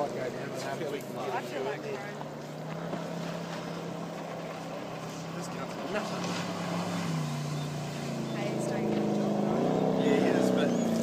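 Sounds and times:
boat engine humming: 0.0 - 11.0.

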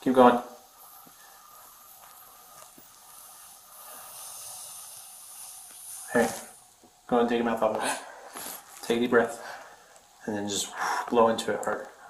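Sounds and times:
breath blown into breath tester: 0.5 - 6.6.

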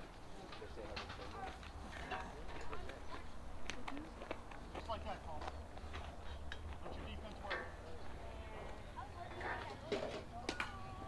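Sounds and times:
distant chatter of voices: 0.0 - 11.0.

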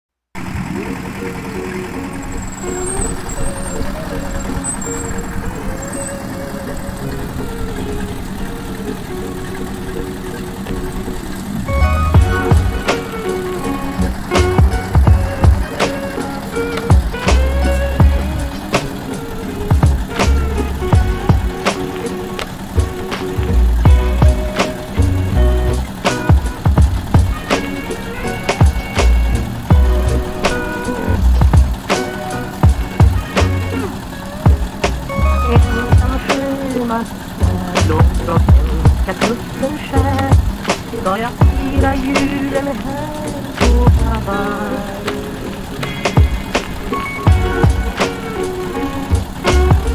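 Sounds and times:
winch engine running: 0.4 - 49.9
music with heavy beat: 11.8 - 44.3, 45.8 - 49.9.

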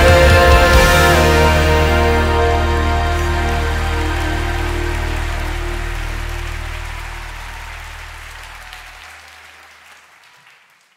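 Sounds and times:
live band held chord: 0.0 - 9.3
crowd applause: 0.0 - 10.9.

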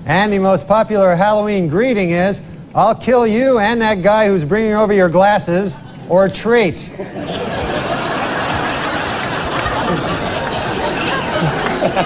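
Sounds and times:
studio audience laughing: 6.9 - 12.0.

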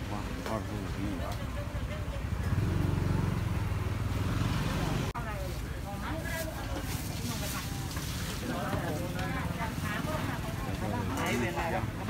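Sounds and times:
voices of people: 0.0 - 12.0.

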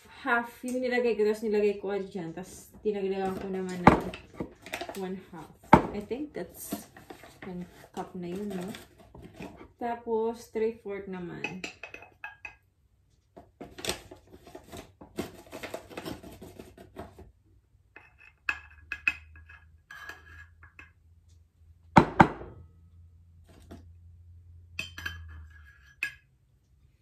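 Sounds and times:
metal cup clinking against glass: 24.8 - 26.2.

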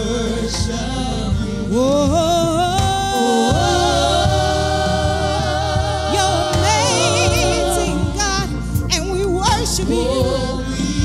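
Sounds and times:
instrumental accompaniment: 0.0 - 11.0
woman singing gospel: 0.0 - 11.0.

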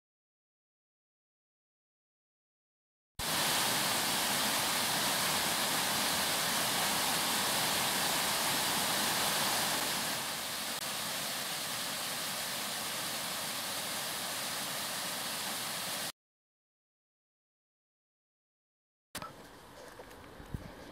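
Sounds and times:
waterfall rushing: 3.2 - 16.1.

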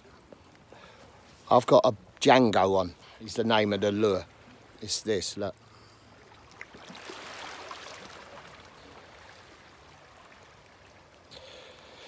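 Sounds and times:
small waves lapping on rocks: 4.2 - 12.0.

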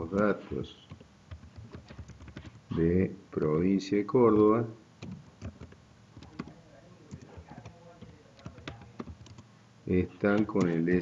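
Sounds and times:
typing on computer keyboard: 0.9 - 2.6, 5.0 - 9.5, 10.2 - 11.0.

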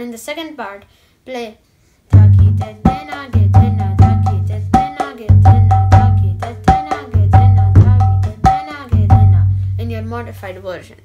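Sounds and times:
mridanga drum slow beat: 2.2 - 9.9.

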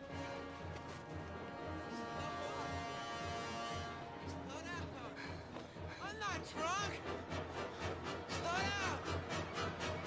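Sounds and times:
sustained orchestral chords: 0.0 - 10.0.

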